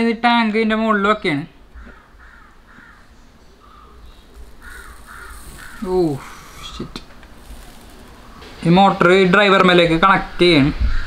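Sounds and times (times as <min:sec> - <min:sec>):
bird calling: 0:01.7 - 0:08.8.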